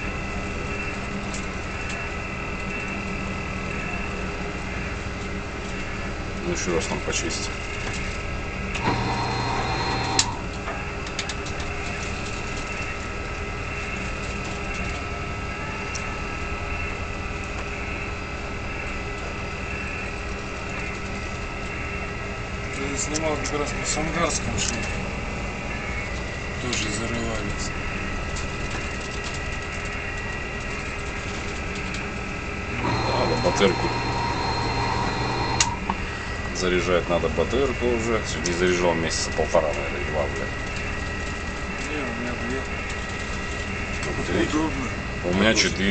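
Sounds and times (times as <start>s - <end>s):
boat engine drone: 8.6s - 10.6s, 32.7s - 36.5s.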